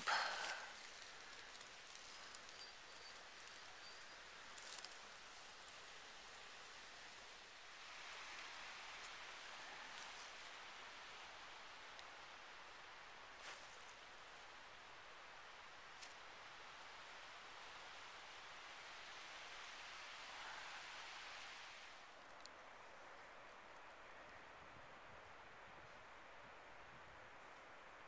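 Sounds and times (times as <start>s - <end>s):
faint outdoor hiss: 0.0s - 28.0s.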